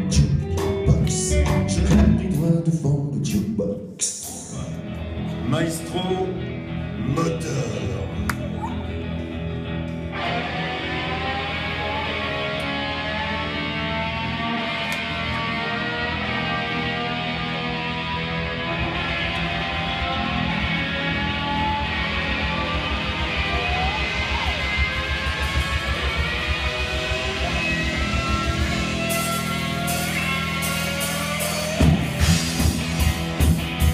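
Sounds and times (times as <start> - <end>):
drums: 0.0 - 33.9
rock band playing: 0.0 - 33.9
electric guitar lines: 4.2 - 33.9.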